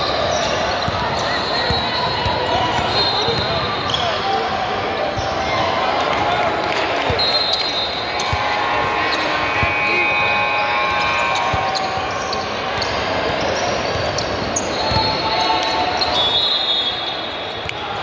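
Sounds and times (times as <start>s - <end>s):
sneaker squeaks: 0.0s - 5.5s, 9.0s - 18.0s.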